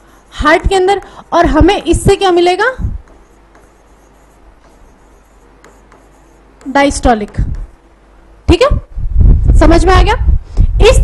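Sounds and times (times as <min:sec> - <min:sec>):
stylus scratching on touchscreen: 0:00.0 - 0:07.8
steady low hum: 0:00.0 - 0:11.0
stylus tapping on touchscreen: 0:03.0 - 0:07.8.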